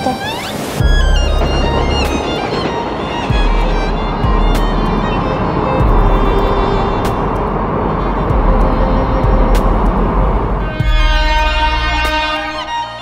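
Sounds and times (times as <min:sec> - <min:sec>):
background music: 0:00.0 - 0:13.0
electric train rumbling: 0:00.0 - 0:13.0.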